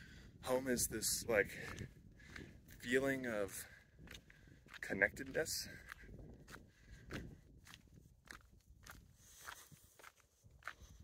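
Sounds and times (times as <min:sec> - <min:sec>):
footsteps on dry ground: 0:00.4 - 0:11.0.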